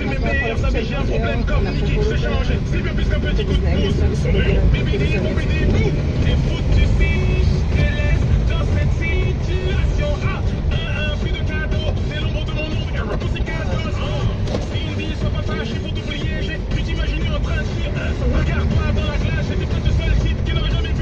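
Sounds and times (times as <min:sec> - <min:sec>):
car engine and tyres rumble: 0:00.0 - 0:21.0
music: 0:00.0 - 0:21.0.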